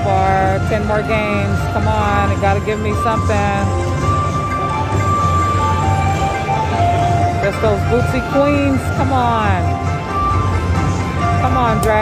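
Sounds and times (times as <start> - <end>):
low rumble of casino floor: 0.0 - 12.0
slot machine electronic music: 0.0 - 12.0.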